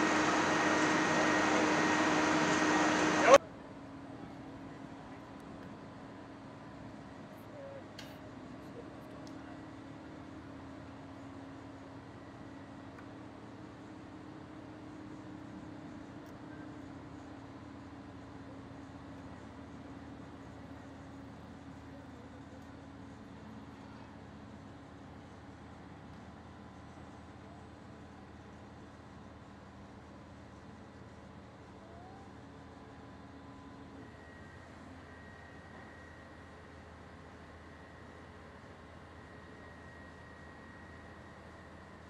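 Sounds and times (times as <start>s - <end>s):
crane engine hum: 0.0s - 5.2s, 8.4s - 42.0s.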